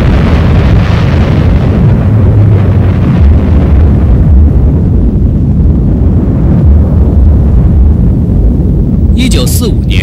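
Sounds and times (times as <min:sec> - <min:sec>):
deep explosion rumble: 0:00.0 - 0:10.0.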